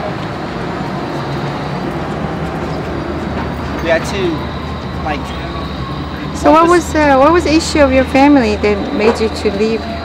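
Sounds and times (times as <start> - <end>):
vehicle traffic rumble: 0.0 - 10.0.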